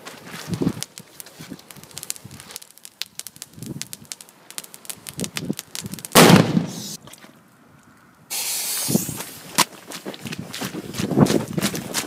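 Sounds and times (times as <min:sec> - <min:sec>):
ticks and crackles: 0:00.5 - 0:06.2
firecracker bang: 0:04.6 - 0:07.0.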